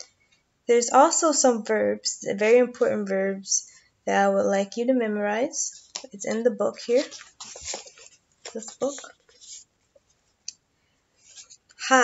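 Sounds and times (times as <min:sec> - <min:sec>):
woman's voice: 0:00.7 - 0:07.2, 0:08.6 - 0:09.1, 0:11.8 - 0:12.0.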